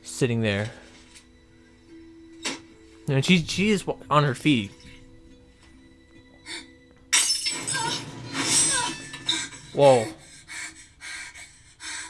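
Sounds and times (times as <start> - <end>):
person breathing hard: 10.2 - 12.0.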